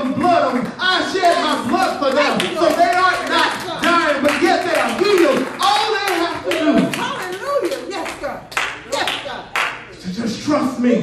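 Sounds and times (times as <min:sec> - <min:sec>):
congregation handclapping: 0:00.0 - 0:10.0.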